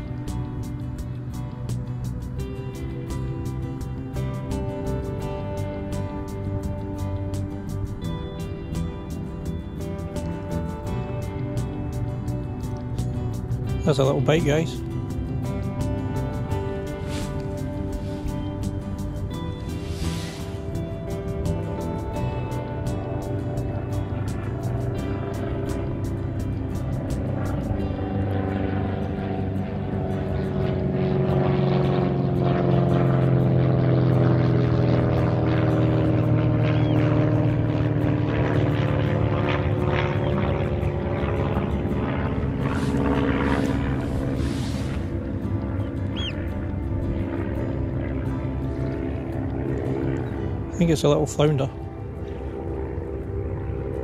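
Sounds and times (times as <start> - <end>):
propeller aircraft flying over: 0.0 - 54.0.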